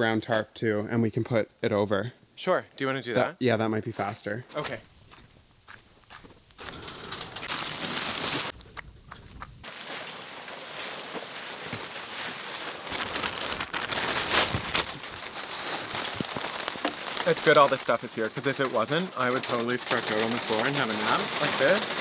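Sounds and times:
rain on a plastic tarp: 0:09.6 - 0:22.0.

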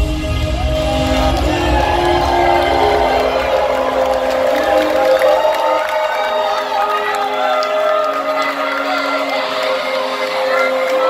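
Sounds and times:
crowd cheering: 0:00.0 - 0:11.0
electronic dance music: 0:00.0 - 0:11.0.

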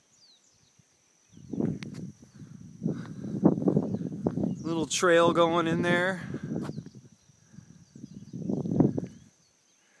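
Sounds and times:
faint bird chirps: 0:00.0 - 0:10.0
grass rustling underfoot: 0:01.5 - 0:05.0.

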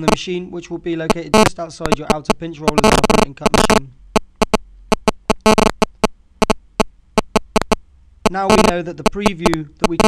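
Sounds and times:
low mains hum: 0:00.0 - 0:10.0
sharp clicks: 0:01.1 - 0:07.8, 0:08.4 - 0:10.0.

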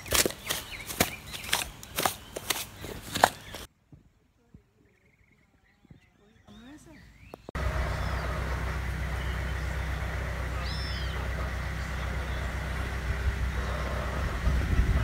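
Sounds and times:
bird chirps: 0:00.0 - 0:03.7, 0:04.5 - 0:14.2
wind rumbling on microphone: 0:03.4 - 0:15.0
wind gusts buffeting microphone: 0:07.5 - 0:15.0.

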